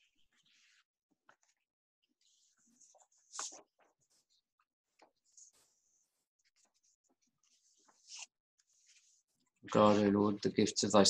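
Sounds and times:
faint rustles and scratches: 0:00.1 - 0:10.1.

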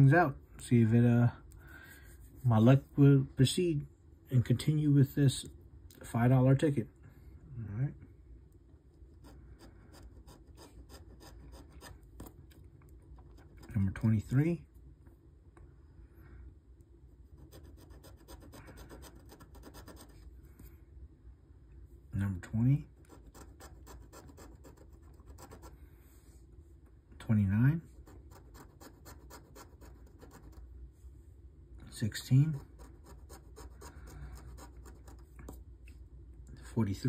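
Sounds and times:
scratcher rubbing lottery ticket: 0:17.3 - 0:20.2, 0:23.0 - 0:25.8, 0:28.0 - 0:30.6.

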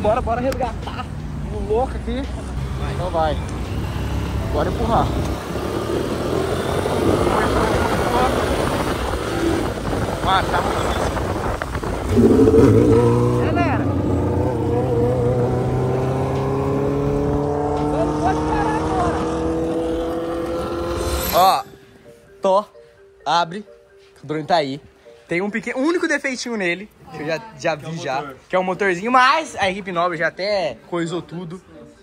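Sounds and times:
motorcycle engines running: 0:01.2 - 0:21.5
motorcycle accelerating: 0:02.4 - 0:21.6
wind noise on microphone: 0:05.0 - 0:20.7.

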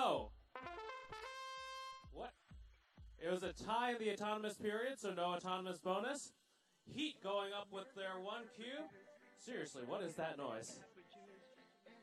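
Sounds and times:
trumpet-like electronic tune: 0:00.0 - 0:02.3.

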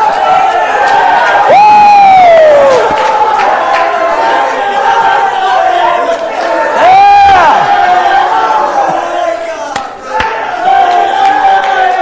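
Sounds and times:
congregation shouting praise: 0:00.0 - 0:12.0.

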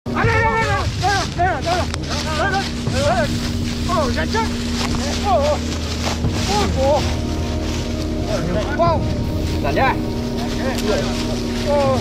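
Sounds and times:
steady low hum: 0:00.6 - 0:12.0.

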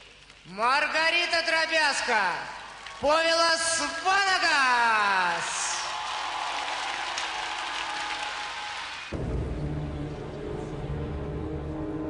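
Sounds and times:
large audience applauding: 0:02.4 - 0:09.4.

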